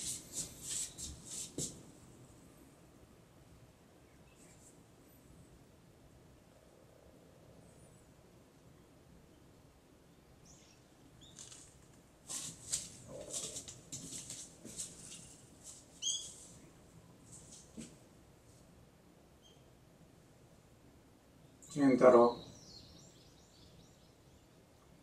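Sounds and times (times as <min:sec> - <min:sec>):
faint outdoor background: 0:00.0 - 0:25.0
birds chirping: 0:16.0 - 0:16.7, 0:21.4 - 0:24.7.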